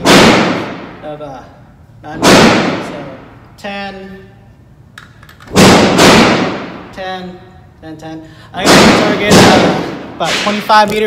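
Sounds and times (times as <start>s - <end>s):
gunshots echoing indoors: 0.0s - 1.2s, 2.1s - 3.4s, 5.4s - 6.9s, 8.6s - 10.9s.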